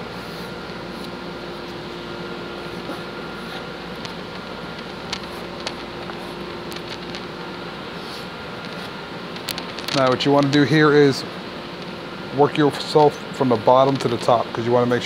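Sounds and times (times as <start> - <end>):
steady hum: 0.0 - 15.0.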